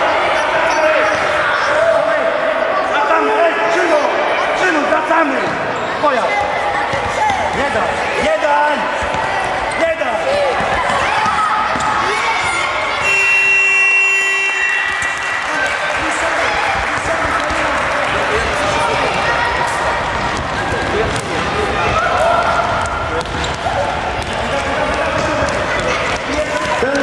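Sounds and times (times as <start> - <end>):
children shouting: 9.2 - 13.3, 14.5 - 21.0, 21.6 - 23.1.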